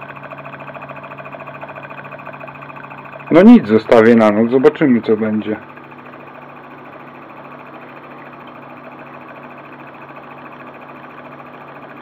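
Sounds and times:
magnet motor humming with chatter: 0.0 - 12.0.

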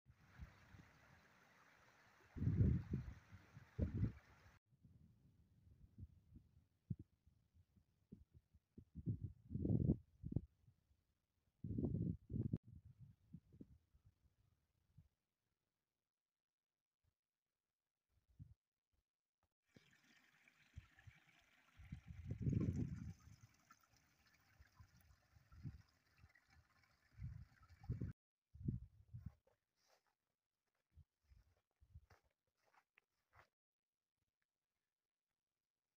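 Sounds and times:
stream trickling over rocks: 0.1 - 4.6, 19.7 - 28.2
wind buffeting microphone: 2.3 - 4.4, 21.7 - 23.6, 27.1 - 29.4.

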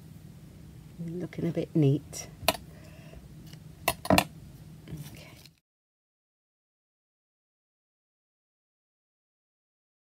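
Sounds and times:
steady low hum: 0.0 - 5.6.

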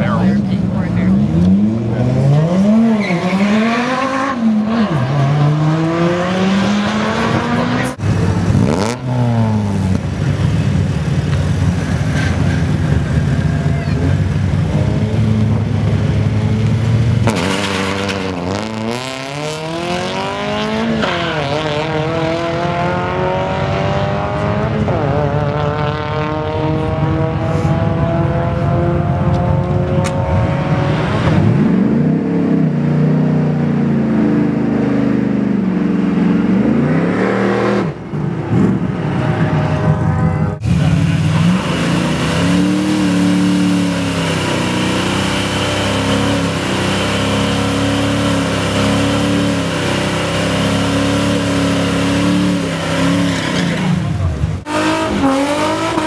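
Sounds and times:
car engine uneven revs: 0.0 - 56.0
cars accelerating hard: 0.0 - 56.0.

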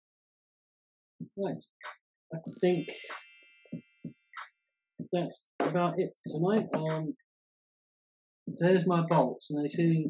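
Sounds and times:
notification bell ding: 2.5 - 4.0.

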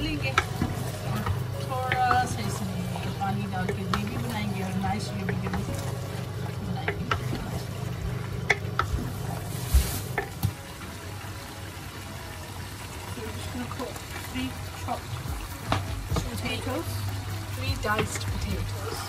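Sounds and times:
wooden spatula scraping pot: 0.0 - 10.4
light sizzling: 0.0 - 19.0.

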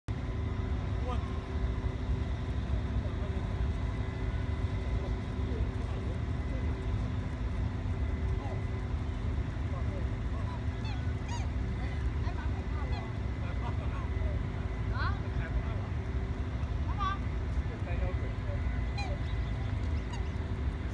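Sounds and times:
faint constant hum: 0.1 - 20.9
low outdoor rumble: 0.1 - 20.9.

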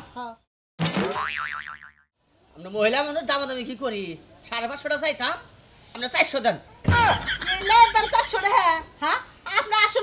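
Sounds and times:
cartoon boing sound effect: 0.8 - 2.0.

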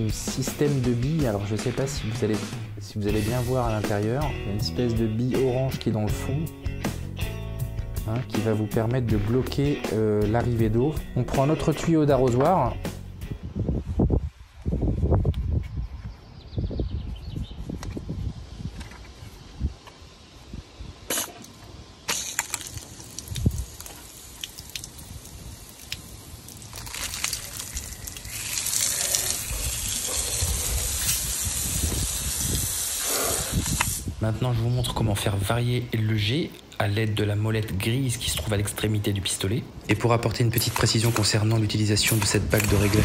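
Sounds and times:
water splashing on wet asphalt: 22.1 - 30.1
water spraying from hose: 22.1 - 34.2, 42.5 - 43.0.

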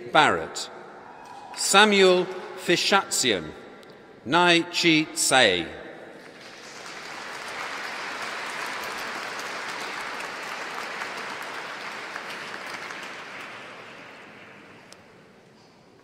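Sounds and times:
audience applauding: 6.2 - 14.6.

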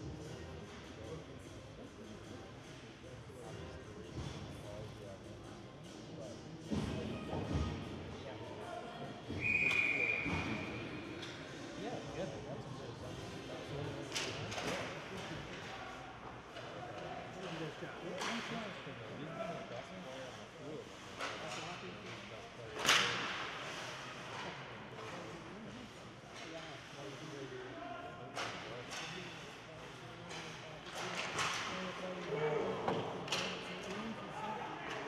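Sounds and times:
whistle blast: 9.4 - 10.5
hockey sticks and puck clacking: 28.4 - 29.2.

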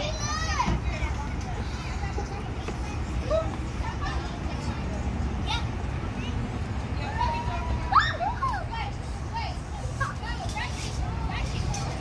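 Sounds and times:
children shrieking and shouting: 0.0 - 4.2, 5.5 - 10.6.

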